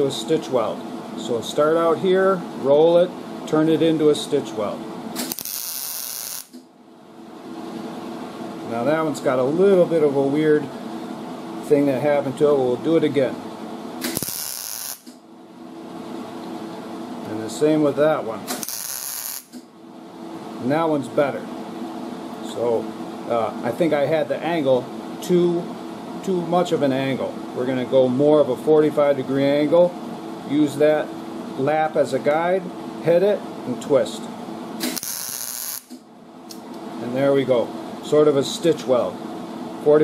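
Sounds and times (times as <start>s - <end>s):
cooling fan running: 0.0s - 40.0s
welder humming at idle: 3.5s - 6.7s, 8.1s - 15.2s, 15.8s - 21.0s, 34.7s - 37.5s
welder arc hissing: 5.2s - 6.6s, 14.0s - 15.2s, 18.5s - 19.6s, 34.8s - 36.0s.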